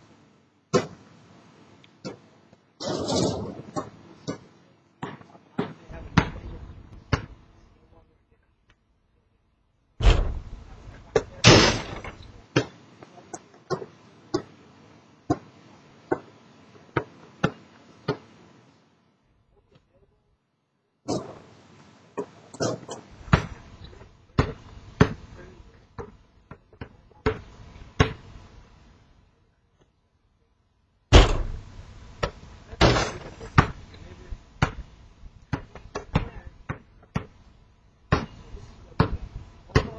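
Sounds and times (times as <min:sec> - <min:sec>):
basketball bouncing on pavement: 0:03.7 - 0:06.5, 0:07.1 - 0:07.4, 0:22.2 - 0:25.4, 0:26.0 - 0:28.3, 0:32.2 - 0:34.0, 0:34.6 - 0:34.9, 0:35.5 - 0:37.4, 0:38.1 - 0:39.9.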